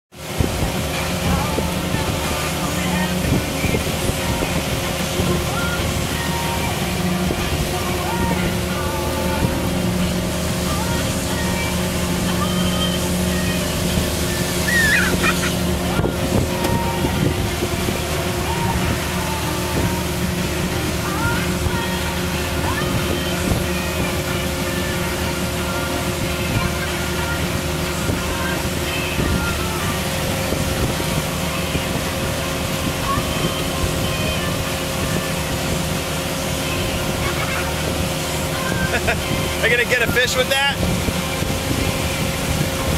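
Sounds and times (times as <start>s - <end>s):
boat motor humming: 0.1s - 42.9s
water rushing: 0.1s - 42.9s
wind: 0.1s - 42.9s.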